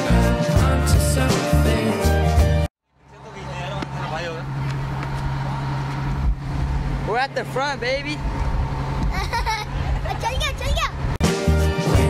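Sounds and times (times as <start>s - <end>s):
boat engine droning: 2.9s - 10.0s.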